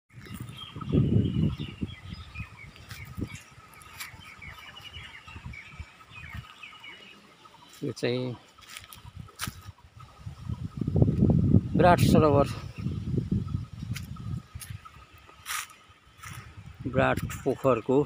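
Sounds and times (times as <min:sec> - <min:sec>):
small birds chirping: 0:00.1 - 0:18.0.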